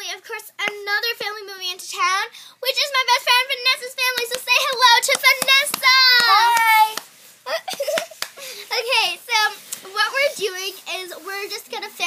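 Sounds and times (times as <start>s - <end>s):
girl singing high notes: 5.6s - 7.0s.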